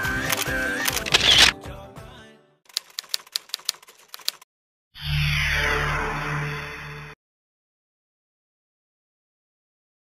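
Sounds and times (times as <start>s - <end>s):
background song: 0.0s - 2.6s
typewriter keystrokes: 0.3s - 1.5s, 2.7s - 4.4s.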